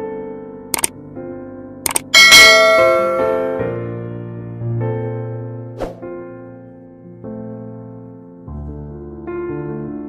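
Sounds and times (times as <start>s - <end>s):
background music: 0.0s - 10.0s
bell chime: 2.2s - 3.6s.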